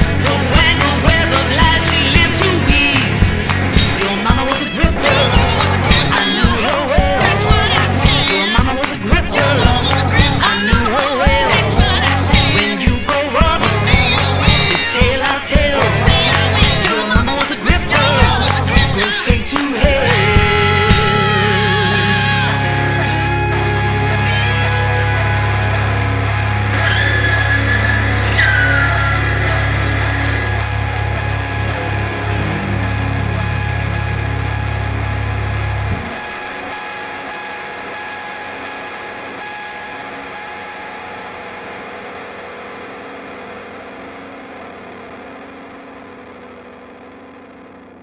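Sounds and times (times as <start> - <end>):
electric guitars and bass ringing: 0.0 - 19.1, 19.8 - 48.0
sliding guitar notes: 20.2 - 47.9.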